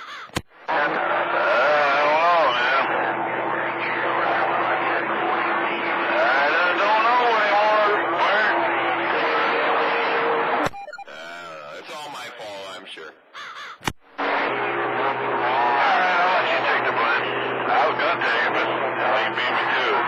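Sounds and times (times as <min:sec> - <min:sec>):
garbled radio voices: 0:00.0 - 0:13.5, 0:14.2 - 0:20.0
whistling radio tones: 0:00.6 - 0:12.7, 0:14.2 - 0:20.0.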